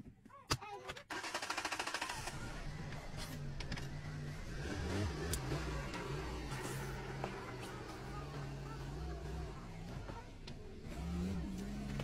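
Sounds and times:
car engine running: 1.8 - 12.0.

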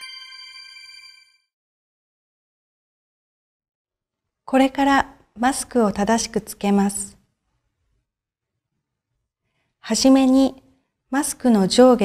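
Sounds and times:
chime ringing: 0.0 - 1.4.

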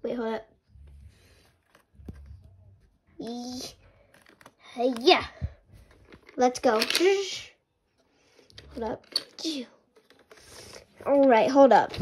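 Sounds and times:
toy car clicking on plastic track: 6.4 - 7.4.

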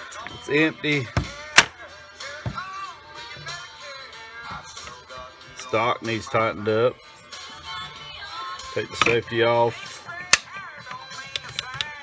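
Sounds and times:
background music: 0.0 - 12.0
dull knock: 2.4 - 2.7.

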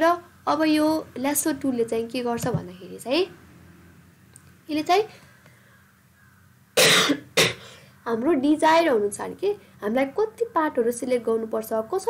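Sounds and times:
woman coughing: 6.8 - 7.8.

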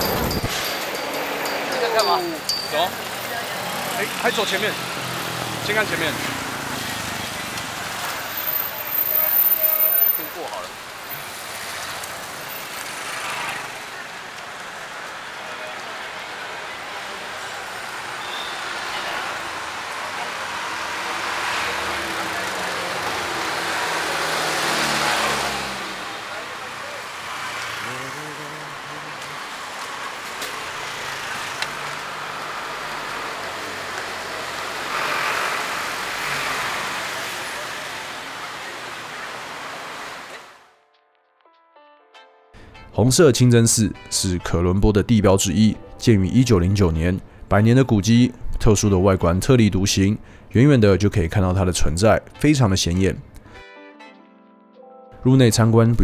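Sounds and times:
chatter of passers-by: 0.0 - 40.6
auto-rickshaws passing: 0.0 - 40.7
motorbikes passing: 0.0 - 40.7
cars passing: 0.0 - 40.8.

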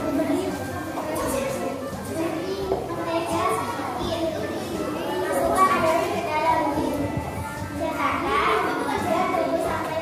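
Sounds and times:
girl speaking into a microphone: 0.0 - 10.0.

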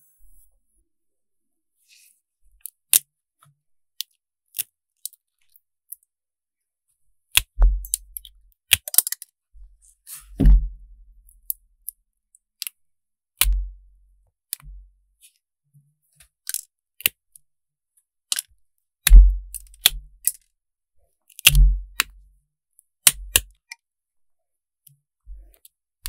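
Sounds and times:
nail nippers clicking and snapping: 7.3 - 9.3, 23.0 - 23.5.

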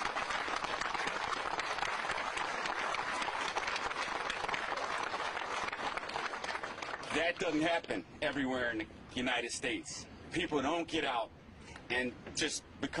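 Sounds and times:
crowd applauding: 0.0 - 7.2.

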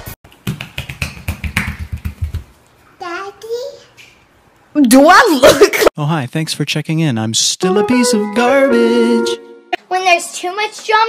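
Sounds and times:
bare feet slapping on tile: 0.0 - 2.6.

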